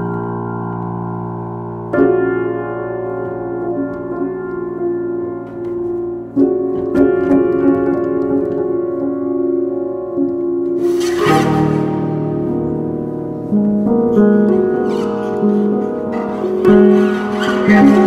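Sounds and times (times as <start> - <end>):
slow piano chords: 0.0 - 18.0.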